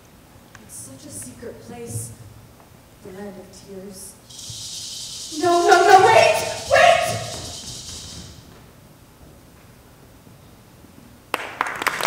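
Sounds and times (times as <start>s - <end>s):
loud call ringing in hall: 4.3s - 8.4s.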